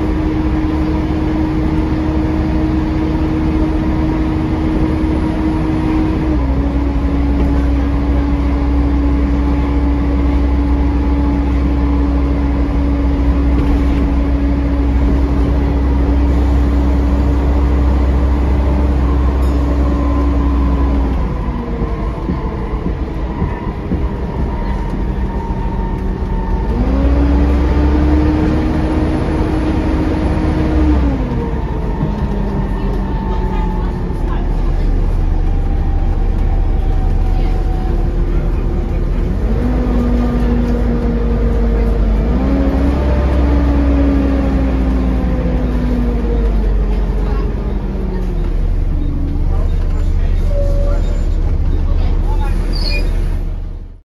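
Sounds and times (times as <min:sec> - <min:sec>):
bus diesel engine pulling away: 0:00.0 - 0:54.0.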